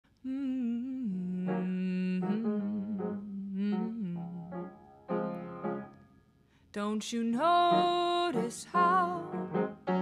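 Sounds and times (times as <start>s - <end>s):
woman singing wordlessly: 0.2s - 4.7s, 6.8s - 9.5s.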